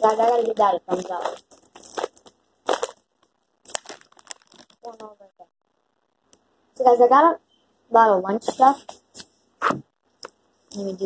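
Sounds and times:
plastic snack bag crinkling: 0:00.0 - 0:05.3.

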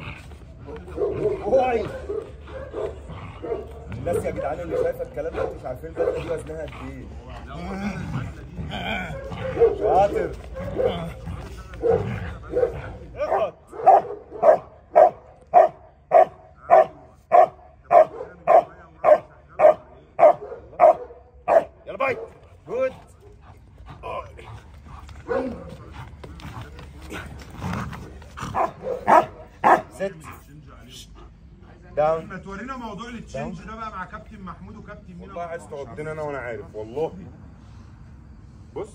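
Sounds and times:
dog barking: 0:00.6 - 0:06.4, 0:09.0 - 0:11.2, 0:11.8 - 0:22.4, 0:25.2 - 0:25.8, 0:28.5 - 0:30.0.

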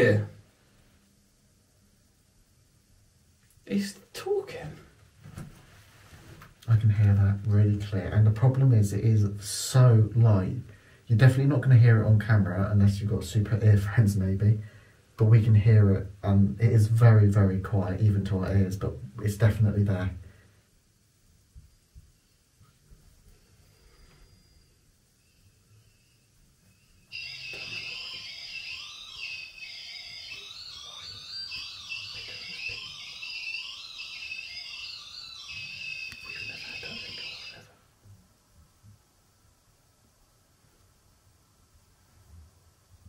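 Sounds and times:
high warbling electronic alarm: 0:27.1 - 0:37.8.

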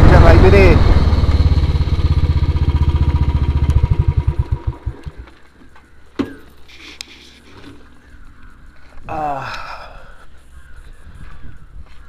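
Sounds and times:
motorcycle engine running: 0:00.0 - 0:05.6.

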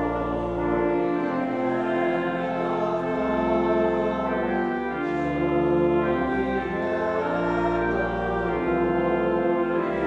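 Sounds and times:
congregation singing: 0:00.0 - 0:10.0
pipe organ playing a hymn: 0:00.0 - 0:10.0.

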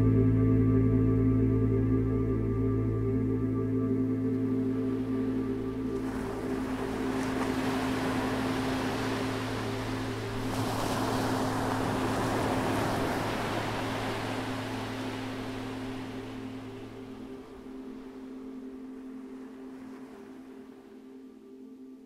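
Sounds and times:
low ambient music drone: 0:00.0 - 0:22.0
waves washing up a beach: 0:04.9 - 0:21.2.

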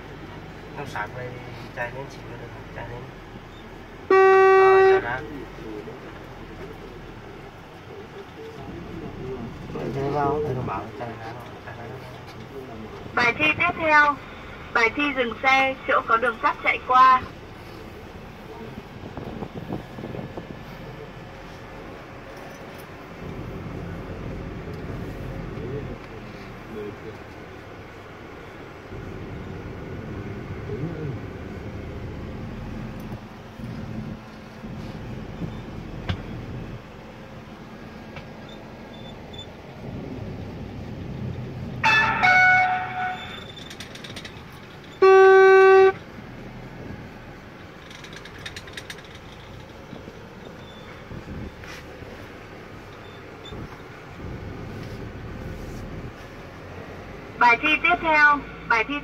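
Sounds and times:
car engine at low revs: 0:00.0 - 0:58.9
vehicle horn blast: 0:04.1 - 0:05.2, 0:41.8 - 0:43.5, 0:45.0 - 0:46.0.

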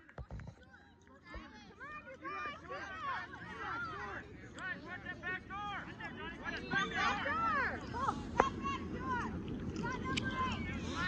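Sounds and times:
people shouting and calling out: 0:00.7 - 0:11.0.

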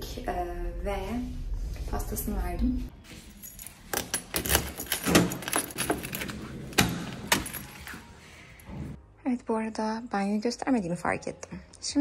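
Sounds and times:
keys jangling on a key ring: 0:03.4 - 0:06.4.

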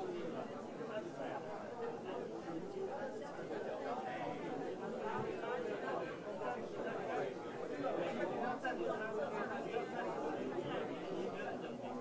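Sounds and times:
overlapping chatter of many people: 0:00.0 - 0:12.0.

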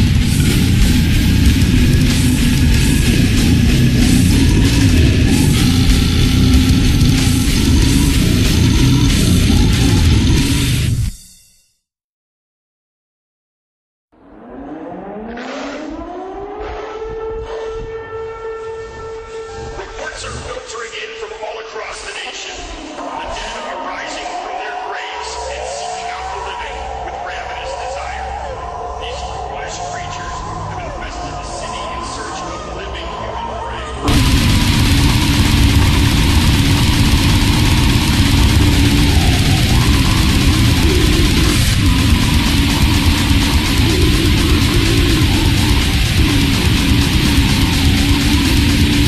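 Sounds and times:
siren wailing: 0:00.0 - 0:10.7, 0:14.2 - 0:20.8, 0:22.5 - 0:49.0
low rumble: 0:00.0 - 0:11.1, 0:34.0 - 0:49.0
distorted grindcore band playing: 0:00.0 - 0:11.5, 0:34.0 - 0:49.0.

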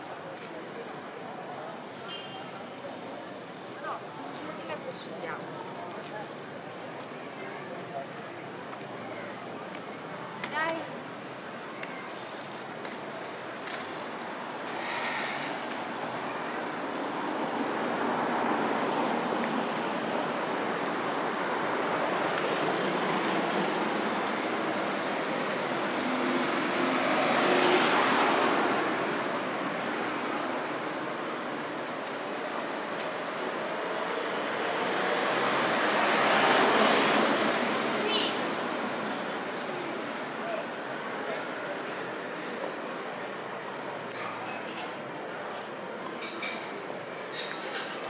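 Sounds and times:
steady traffic hum: 0:00.0 - 0:48.0
cars driving past: 0:13.8 - 0:44.0.

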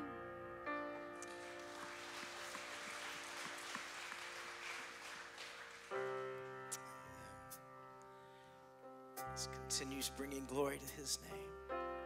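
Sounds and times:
congregation applauding lightly: 0:01.2 - 0:07.2.

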